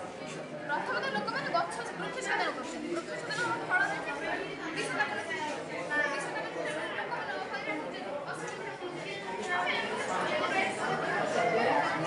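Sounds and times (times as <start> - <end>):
many people talking at once: 0.0 - 12.0.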